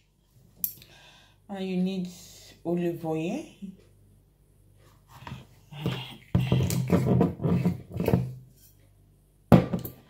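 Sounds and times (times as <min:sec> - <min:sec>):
handling noises and knocks: 0:09.5 - 0:10.0.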